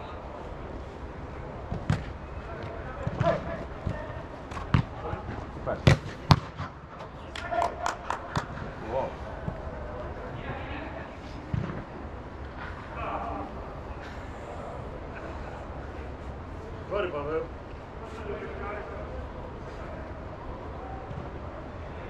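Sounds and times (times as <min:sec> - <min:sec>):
football kicks on turf: 0:01.7 - 0:06.8
players shouting: 0:07.0 - 0:11.2.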